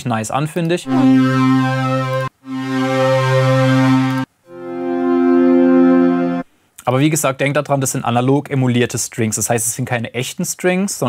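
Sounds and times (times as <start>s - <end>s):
synthesized string chords: 0.9s - 6.5s.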